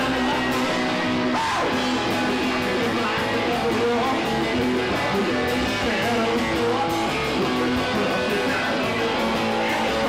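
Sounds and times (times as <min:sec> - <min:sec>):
electric guitars strumming: 0:00.0 - 0:10.0
garage rock band playing: 0:00.0 - 0:10.0.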